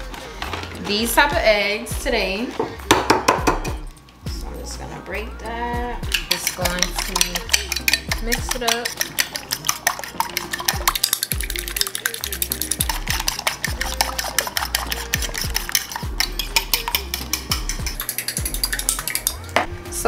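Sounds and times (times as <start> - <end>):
fork clicking against dish: 6.1 - 19.5.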